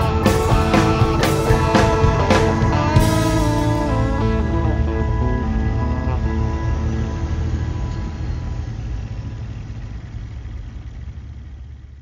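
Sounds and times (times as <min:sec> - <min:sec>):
low rough engine rumble: 0:00.0 - 0:12.0.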